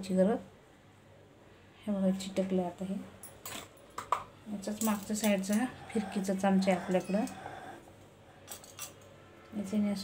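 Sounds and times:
woman speaking: 0:00.0 - 0:00.5, 0:01.8 - 0:03.2, 0:04.4 - 0:07.6, 0:09.5 - 0:10.0.

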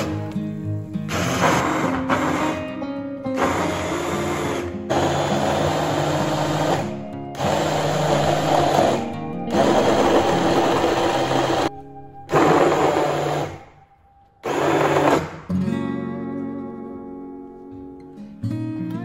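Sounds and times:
immersion blender chopping: 0:03.4 - 0:11.7.

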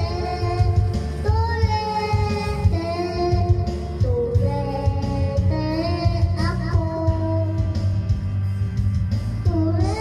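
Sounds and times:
boy singing into a microphone: 0:00.0 - 0:08.1, 0:09.4 - 0:10.0
backing track with bass beat: 0:00.0 - 0:10.0.

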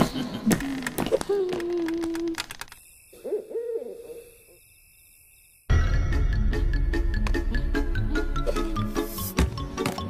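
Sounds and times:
faint high night hiss: 0:02.6 - 0:05.7
owl hooting: 0:03.1 - 0:04.6.

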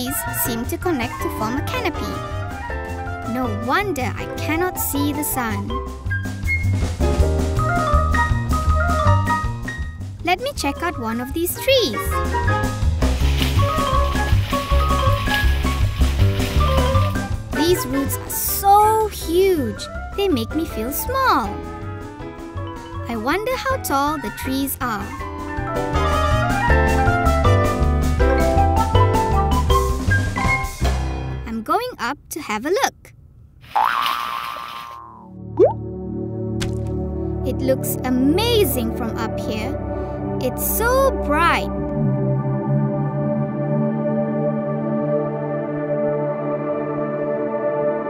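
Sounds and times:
cartoon jump sound effect: 0:33.7 - 0:35.8.

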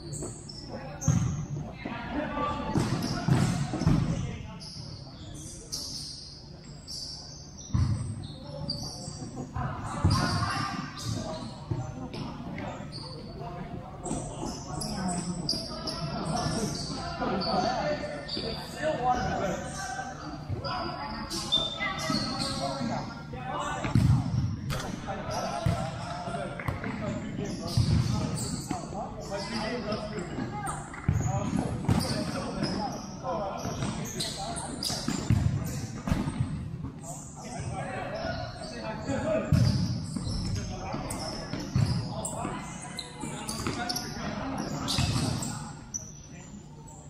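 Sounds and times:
shoes squeaking on court: 0:00.0 - 0:01.9, 0:02.5 - 0:47.0.

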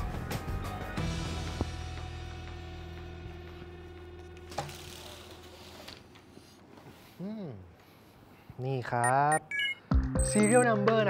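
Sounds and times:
man speaking: 0:08.6 - 0:09.5, 0:10.3 - 0:10.8
high beeps stepping down in pitch: 0:09.0 - 0:10.7.

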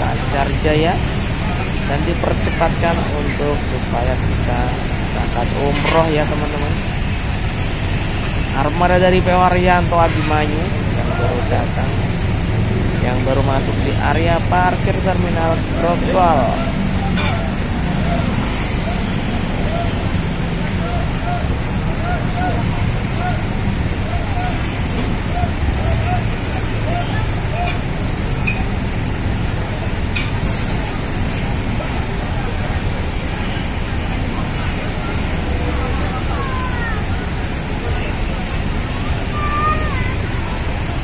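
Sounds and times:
idling bus engines: 0:00.0 - 0:41.0
people chattering: 0:00.0 - 0:41.0
traffic: 0:00.0 - 0:41.0.

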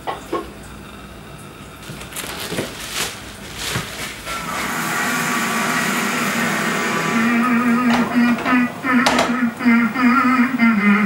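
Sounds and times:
steady drone of held tones: 0:04.2 - 0:11.0.

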